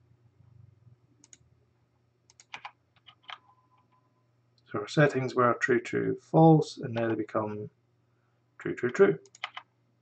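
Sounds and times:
keyboard and mouse clicks: 2.3 - 4.0, 8.9 - 9.7.

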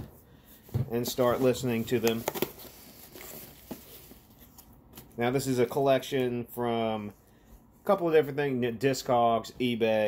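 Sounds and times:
cardboard box rustling: 0.9 - 4.7.

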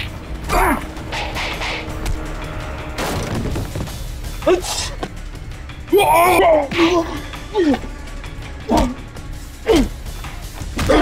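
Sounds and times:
low background score: 0.0 - 11.0.

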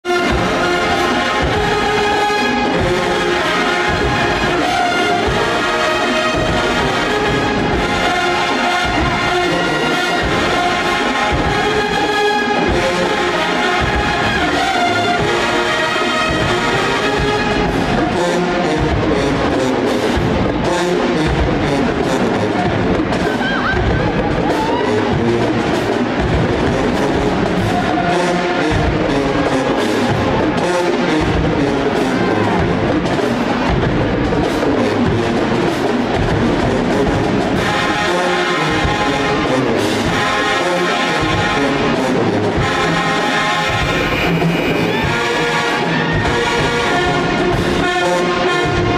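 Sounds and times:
marching band playing: 0.0 - 48.9.

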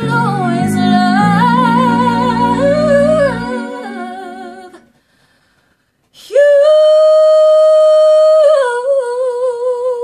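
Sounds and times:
woman singing wordless line: 0.0 - 5.0, 6.1 - 10.0.

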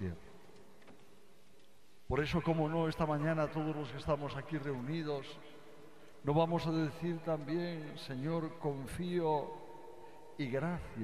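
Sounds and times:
man speaking with reverberation: 0.0 - 0.6, 2.0 - 11.0
faint room noise: 0.0 - 11.0.

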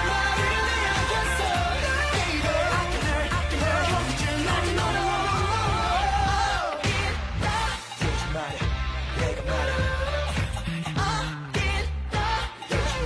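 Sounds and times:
men singing pop song: 0.0 - 13.0
pop backing track with heavy bass: 0.0 - 13.0.

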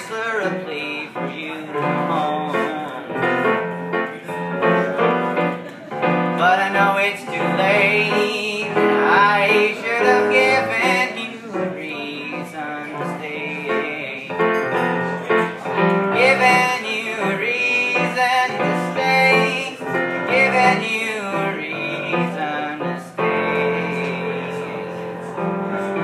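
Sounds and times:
digital piano chords and bass line: 0.0 - 26.0.

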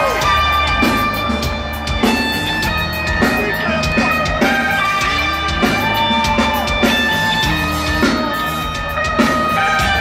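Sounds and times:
electric guitar chords: 0.0 - 10.0.

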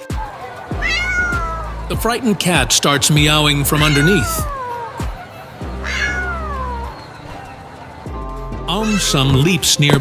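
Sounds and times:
kitten meowing: 0.8 - 1.7, 3.7 - 5.0, 5.8 - 7.0.

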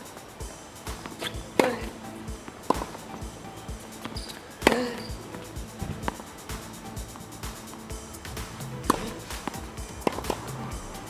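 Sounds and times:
background music with steady beat: 0.0 - 11.0
racket striking tennis ball: 0.8 - 11.0.

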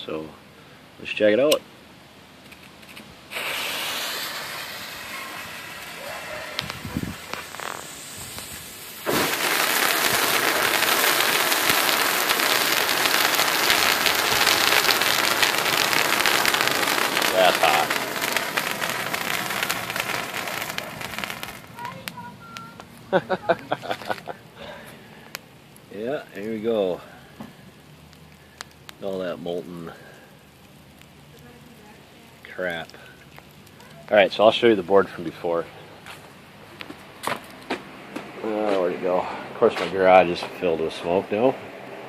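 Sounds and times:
pyrotechnic fountain hissing and crackling: 0.0 - 42.0.

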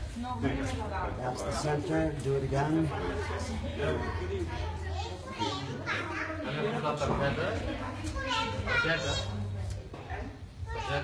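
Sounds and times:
children playing and calling out: 4.6 - 6.8.

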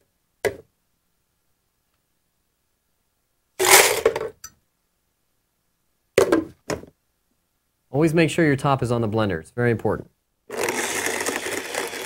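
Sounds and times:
ice clattering into blender jar: 3.6 - 4.2, 10.5 - 12.0.

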